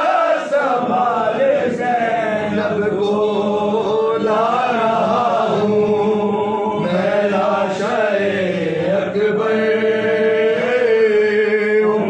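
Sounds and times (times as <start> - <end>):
man singing gliding lines: 0.0 - 12.0
men chanting a lament: 0.0 - 12.0.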